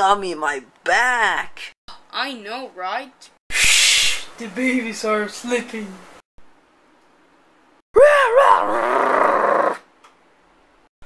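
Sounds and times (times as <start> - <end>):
loud growling roar: 8.4 - 9.9.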